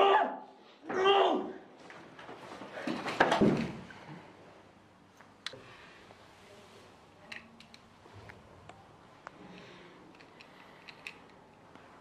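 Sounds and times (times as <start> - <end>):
light handling clicks and knocks: 10.1 - 11.4.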